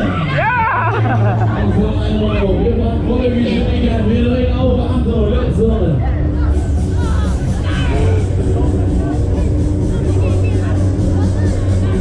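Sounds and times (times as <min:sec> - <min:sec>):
crowd babble: 0:00.0 - 0:12.0
loud fairground music: 0:00.0 - 0:12.0.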